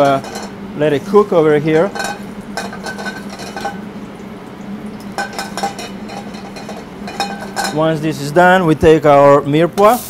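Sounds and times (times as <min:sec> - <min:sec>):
metal pan clinking and scraping: 0:00.0 - 0:00.6, 0:01.8 - 0:03.8, 0:05.2 - 0:07.8
garlic sizzling in oil: 0:01.9 - 0:07.6, 0:09.8 - 0:10.0.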